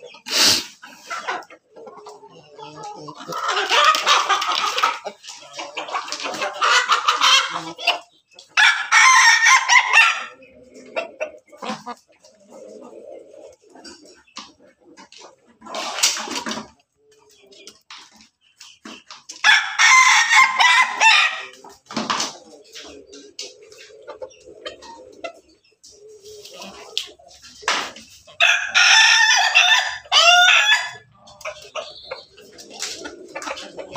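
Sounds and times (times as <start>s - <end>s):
hens clucking quietly: 0.0s - 33.9s
roosters crowing: 8.6s - 10.4s, 19.4s - 21.6s, 28.3s - 31.7s.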